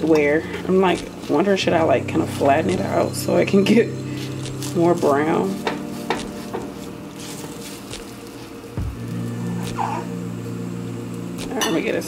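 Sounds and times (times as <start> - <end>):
low thump: 8.8 - 9.0.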